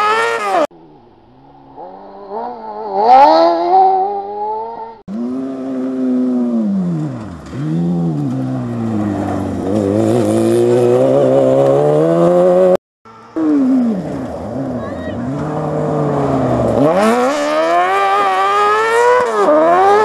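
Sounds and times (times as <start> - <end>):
racing buggy engine accelerating: 0.0 - 20.0.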